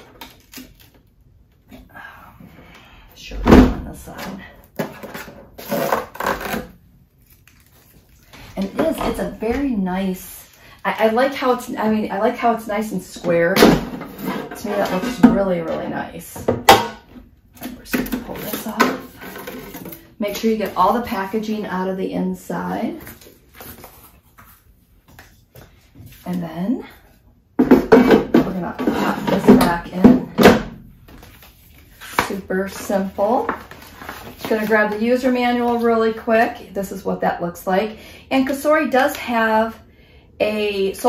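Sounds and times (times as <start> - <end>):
scraping and rustling of packaging: 4.8 - 8.7, 31.1 - 35.8
packing material rustling: 5.6 - 8.6.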